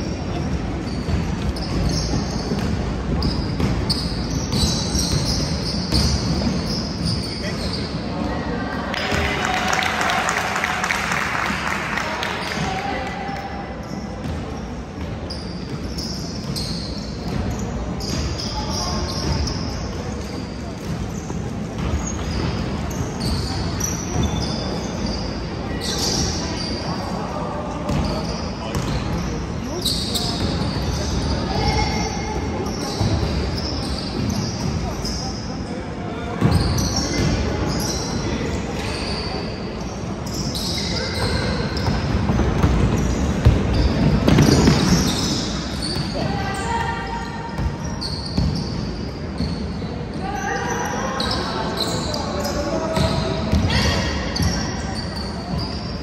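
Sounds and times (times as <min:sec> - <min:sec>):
basketball bouncing on court: 0:00.4 - 0:07.1, 0:14.2 - 0:18.5, 0:27.9 - 0:29.3, 0:41.8 - 0:46.3, 0:47.6 - 0:48.8.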